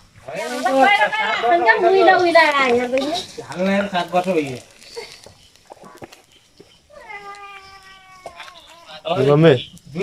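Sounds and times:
animal crying out: 6.9s - 9.0s.

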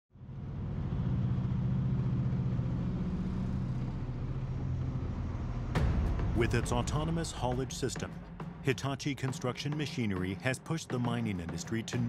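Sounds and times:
large diesel truck engine running: 0.2s - 7.5s.

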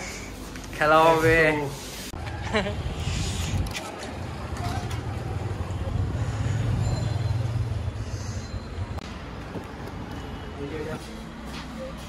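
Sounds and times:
street traffic: 2.1s - 12.0s.

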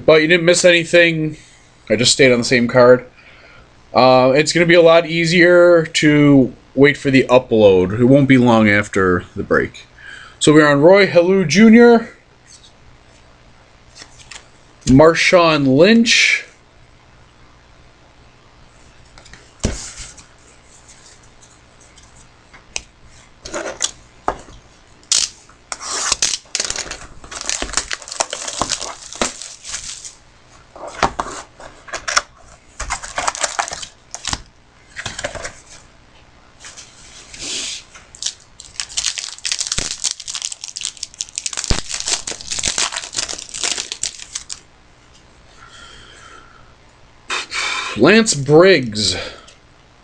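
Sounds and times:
card pack wrapper tearing: 25.1s - 30.2s, 32.8s - 34.4s, 38.1s - 44.6s.

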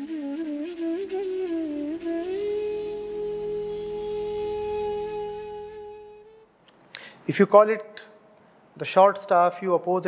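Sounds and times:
flute melody: 0.0s - 6.6s.

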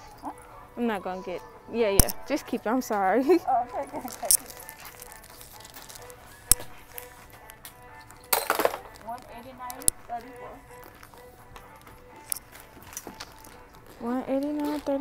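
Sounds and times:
quiet background music: 0.0s - 15.0s
sharp click: 2.0s - 2.3s, 6.5s - 6.8s.

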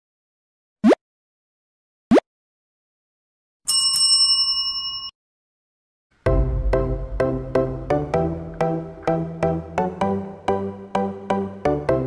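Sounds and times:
notification bell ding: 3.7s - 5.1s.

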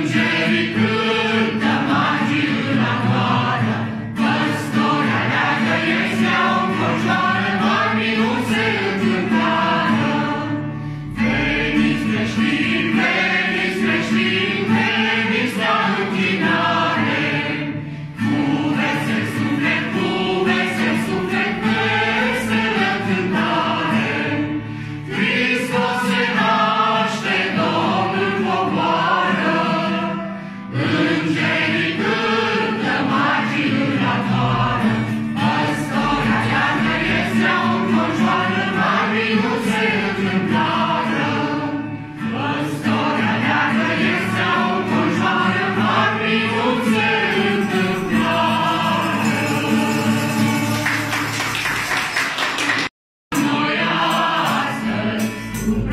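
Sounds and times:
acoustic guitar: 0.0s - 55.9s
group singing a carol: 0.0s - 55.9s.

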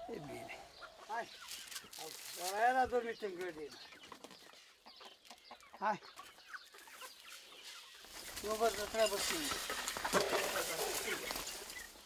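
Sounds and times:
chicken clucking: 0.0s - 12.0s.

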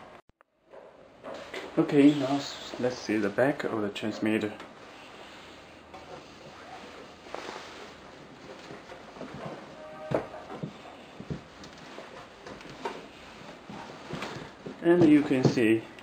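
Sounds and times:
handling knocks and rubs: 5.9s - 15.9s.

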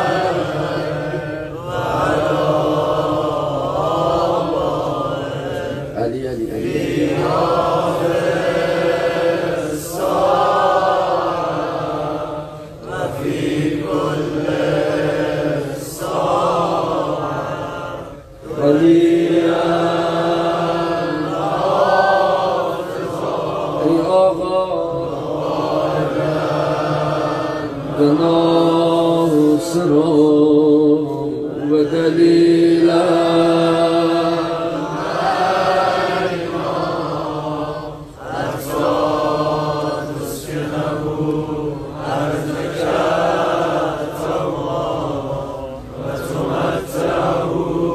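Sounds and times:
man chanting a lament: 0.0s - 9.8s, 23.4s - 34.8s.

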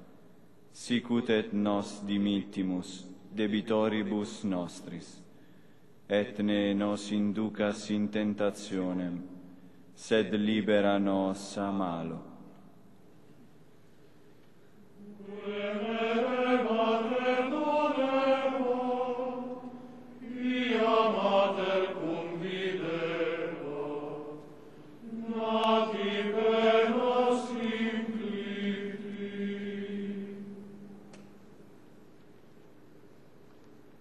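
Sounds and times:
male choir chanting: 15.0s - 30.9s.

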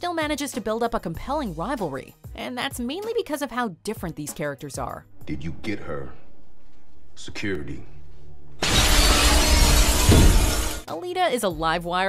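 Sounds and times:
deep low rumble: 5.1s - 10.8s
glass shattering: 8.6s - 10.9s.

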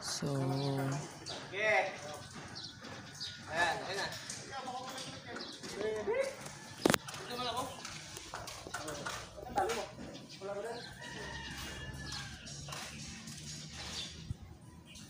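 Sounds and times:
people talking: 0.0s - 2.3s.

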